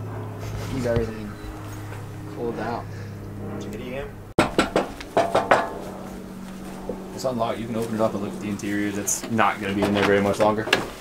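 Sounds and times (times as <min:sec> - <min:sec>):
hard objects clattering knocks: 0:04.4 - 0:05.9.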